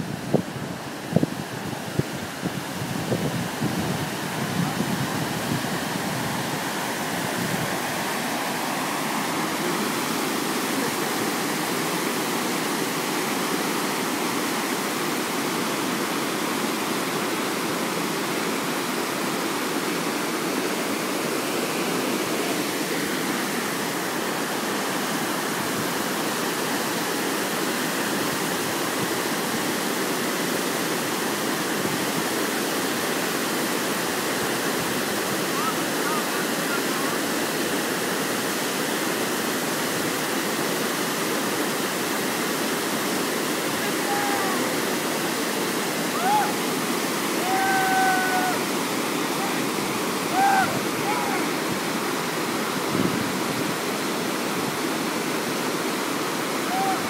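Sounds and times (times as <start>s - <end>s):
water rushing over weir: 0.0s - 57.0s
short high calls: 46.1s - 46.7s, 56.6s - 57.0s.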